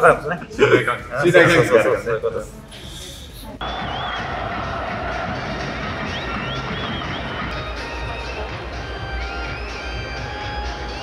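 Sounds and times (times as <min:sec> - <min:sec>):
large football crowd noise: 0:03.6 - 0:11.0
music: 0:03.6 - 0:11.0.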